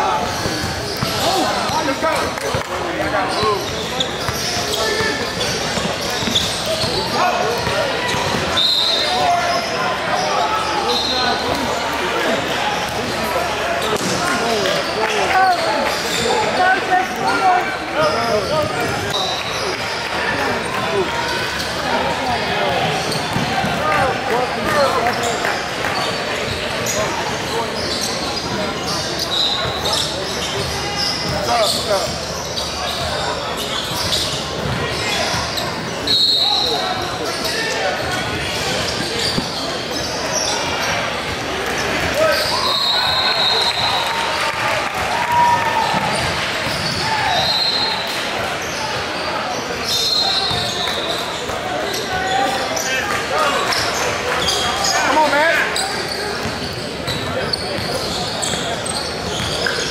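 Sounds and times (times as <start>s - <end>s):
indistinct crowd chatter: 0.0s - 59.9s
high squeaks or whistles: 8.1s - 11.3s, 36.0s - 37.6s, 42.3s - 44.1s, 46.7s - 48.1s, 49.8s - 51.2s.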